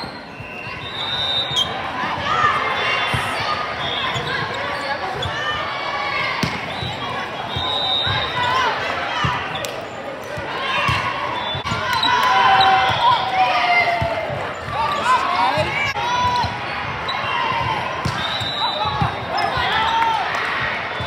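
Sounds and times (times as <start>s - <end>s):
shoes squeaking on floor: 0.0s - 5.6s.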